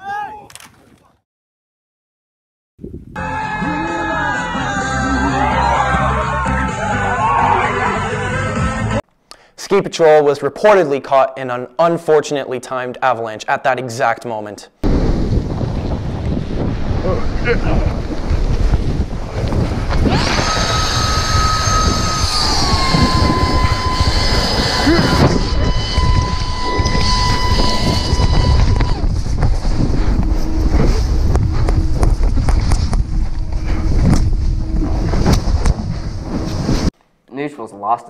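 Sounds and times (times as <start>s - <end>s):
wind and snow rushing over microphone: 14.8s - 36.9s
steady high whistling tone: 20.1s - 35.4s.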